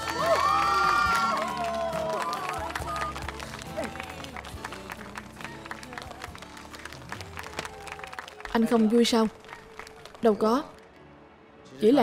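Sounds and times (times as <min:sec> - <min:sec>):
hand clapping: 0:01.0 - 0:10.3
romantic pop ballad singing: 0:03.3 - 0:08.1.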